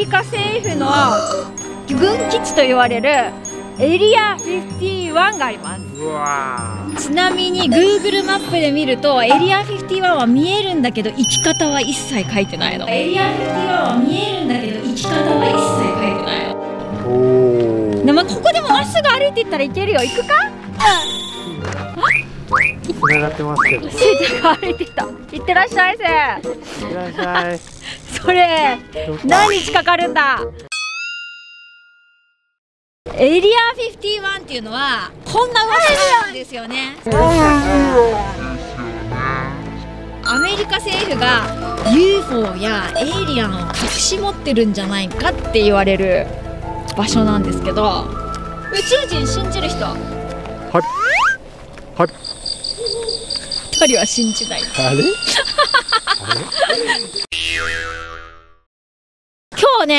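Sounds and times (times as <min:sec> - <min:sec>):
bright bell ding: 0:11.2 - 0:12.9, 0:20.0 - 0:21.7, 0:40.2 - 0:40.8, 0:53.8 - 0:55.6
cartoon boing: 0:17.0 - 0:18.1, 0:50.8 - 0:51.4, 0:57.3 - 0:58.6.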